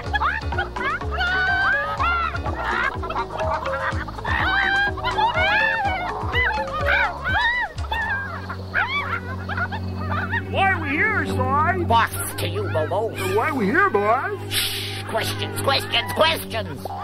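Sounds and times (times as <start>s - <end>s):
bouncy music score: 0.0s - 17.0s
cartoon hens clucking: 0.0s - 17.0s.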